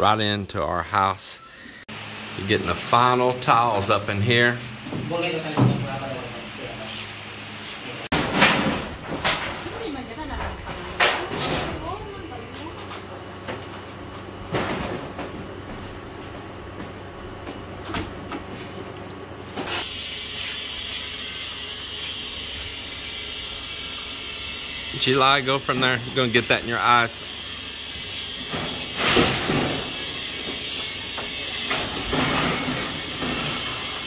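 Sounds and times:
steady work noise: 0.0s - 34.0s
voices: 9.6s - 13.2s.

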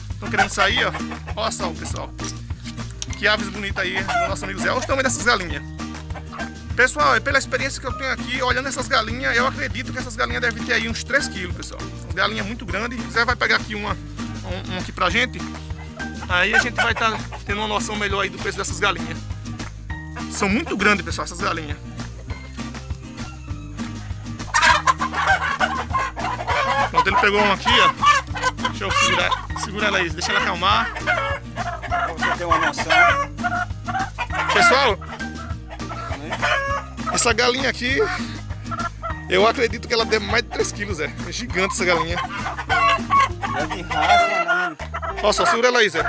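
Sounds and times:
chickens clucking and calling: 0.2s - 2.0s, 3.4s - 6.7s, 15.5s - 18.0s, 21.8s - 39.3s, 41.5s - 46.0s
hen squawking in alarm: 3.7s - 5.2s, 15.7s - 17.5s, 23.2s - 37.4s, 41.6s - 45.6s.

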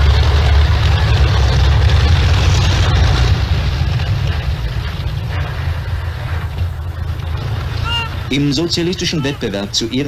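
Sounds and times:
tracked vehicle engine rumble: 0.0s - 10.0s.

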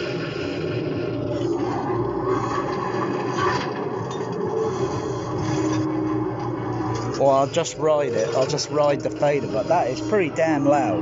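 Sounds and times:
loud movie soundtrack: 0.0s - 11.0s.

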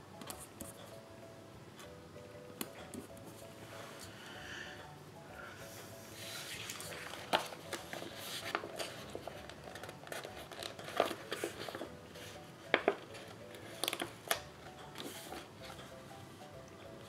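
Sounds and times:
paper sheets rustling: 6.2s - 11.9s.

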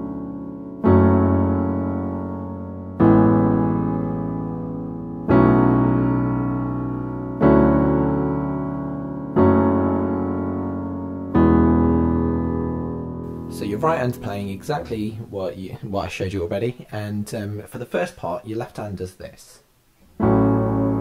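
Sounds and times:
digital piano low chords: 0.0s - 15.4s, 20.2s - 21.0s.

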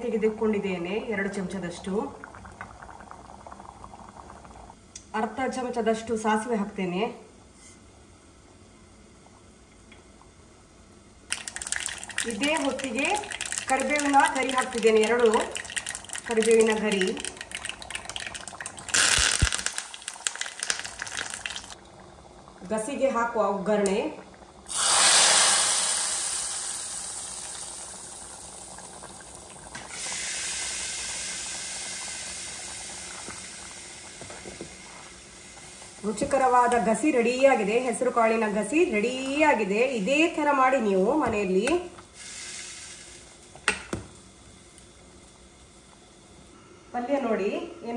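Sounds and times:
hot oil sizzling in curry: 11.3s - 21.8s, 24.6s - 40.5s, 42.0s - 45.8s
seeds popping in hot oil: 11.3s - 21.8s.

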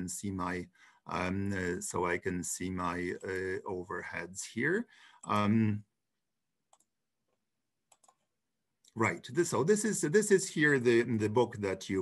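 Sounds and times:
computer mouse clicks: 7.9s - 9.0s.

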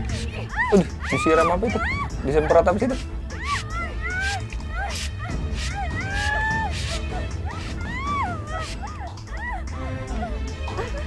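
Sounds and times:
girl crying out in pain: 0.4s - 2.6s, 3.3s - 11.0s
spray bottle squirting: 4.2s - 7.0s.

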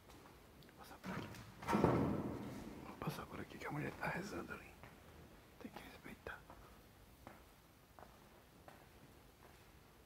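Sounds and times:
faint whispering: 0.7s - 1.3s, 2.8s - 4.8s, 5.6s - 6.8s.

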